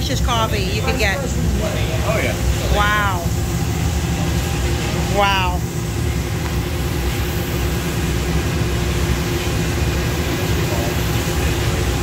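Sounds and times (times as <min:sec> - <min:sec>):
coffee roaster blower rumbling: 0:00.0 - 0:12.0.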